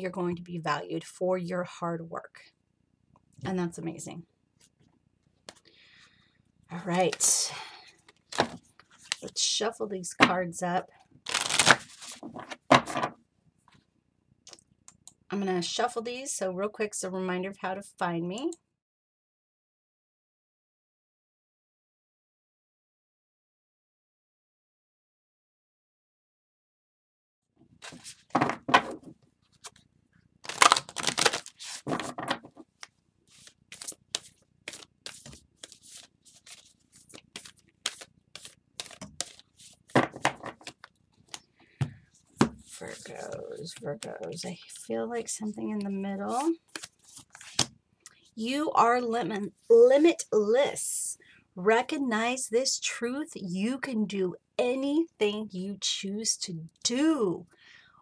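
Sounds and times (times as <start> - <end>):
cards riffle-shuffled: 11.3 - 12.6, 27.8 - 28.3, 30.4 - 41.4, 42.4 - 44.9, 46.2 - 47.7.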